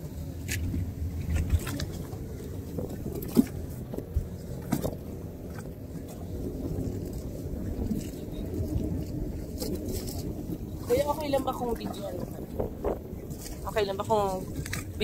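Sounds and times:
boat engine rumble: 0.0 - 15.0
wind on microphone: 0.0 - 15.0.

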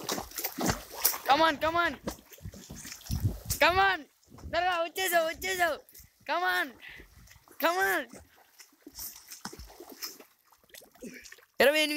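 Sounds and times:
pool water splashing from strokes: 0.0 - 3.5, 6.7 - 11.9.

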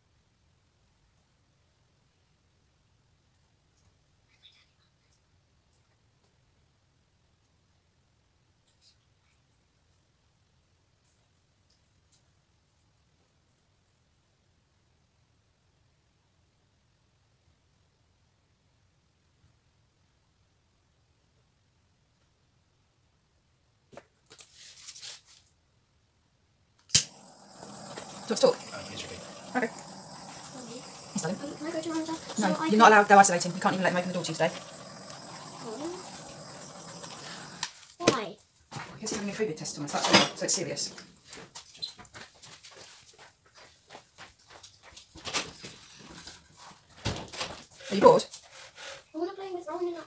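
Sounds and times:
sharp click: 26.8 - 27.1.

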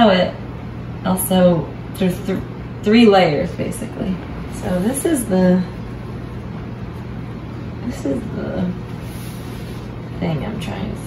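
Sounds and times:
woman speaking: 0.0 - 0.4, 1.0 - 5.9, 7.8 - 8.9, 10.1 - 11.0
low room noise hum: 0.0 - 11.0.

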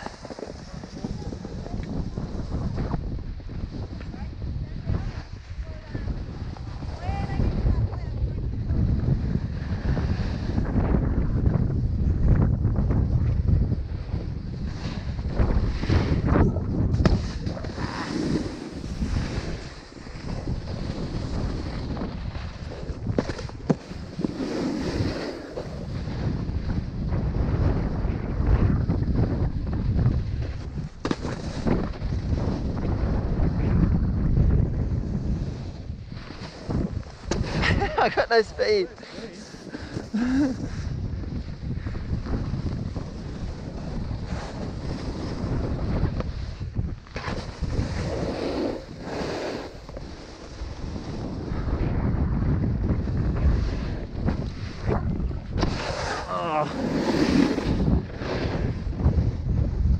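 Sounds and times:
snowboard scraping on snow: 0.0 - 59.9
wind noise on microphone: 0.0 - 59.9.

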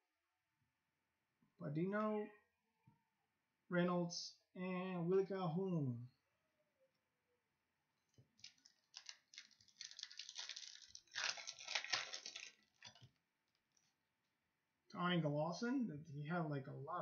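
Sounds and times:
cards rustling: 8.4 - 13.1
foil wrapper crinkling and tearing: 8.4 - 13.2.

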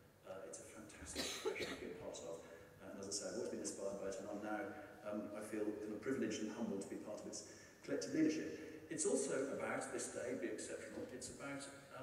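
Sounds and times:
man speaking: 0.2 - 12.0
person coughing: 1.2 - 2.0.

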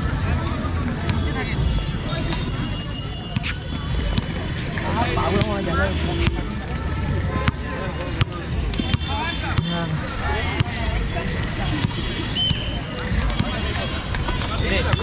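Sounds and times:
people talking and calling: 0.0 - 15.0.

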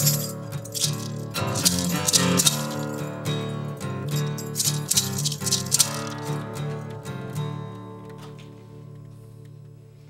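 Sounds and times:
maraca shaking: 0.0 - 3.1, 4.1 - 6.2
acoustic guitars playing blues: 0.0 - 9.7.

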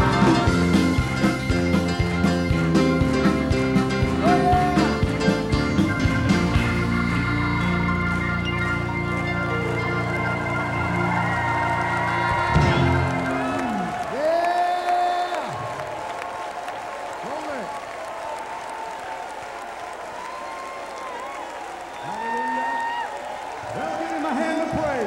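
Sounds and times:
keyboard and organ chords: 0.0 - 14.2
congregation clapping and cheering: 0.0 - 25.0.

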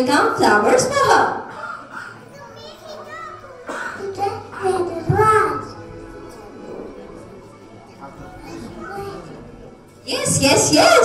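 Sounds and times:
faint music: 0.0 - 11.0
young children talking softly: 1.5 - 5.6, 8.0 - 9.5.

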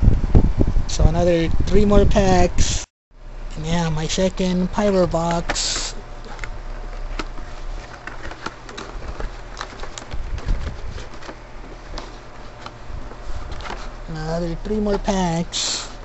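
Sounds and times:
low hum: 0.0 - 16.0
packaging crackling and clicking: 5.8 - 14.0.

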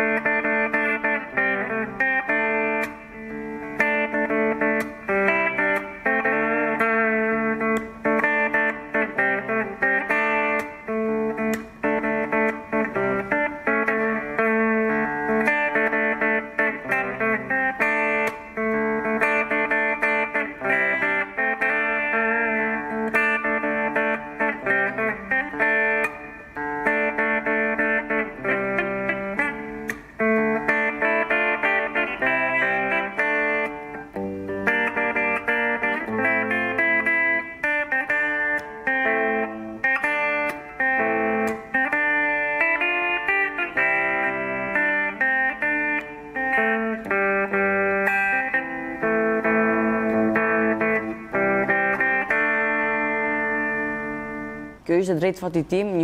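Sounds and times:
electric guitar playing: 0.0 - 56.0.

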